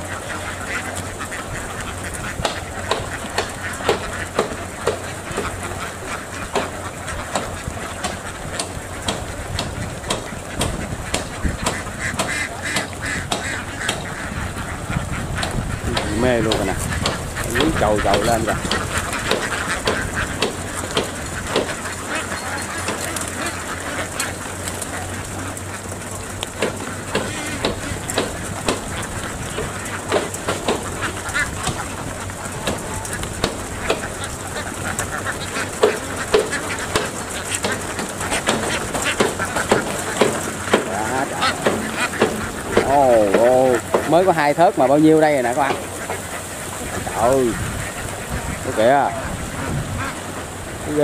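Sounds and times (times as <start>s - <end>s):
flock of ducks quacking: 0.0s - 51.0s.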